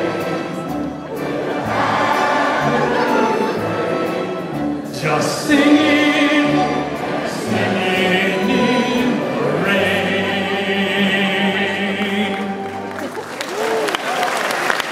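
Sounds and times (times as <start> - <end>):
audience singing along: 0.0 - 12.9
orchestra playing: 0.0 - 14.8.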